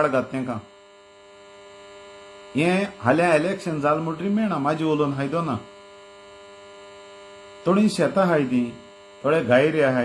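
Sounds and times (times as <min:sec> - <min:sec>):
man talking: 0:00.0 - 0:00.7, 0:02.6 - 0:05.7, 0:07.6 - 0:10.0
steady electrical hum: 0:00.0 - 0:10.0.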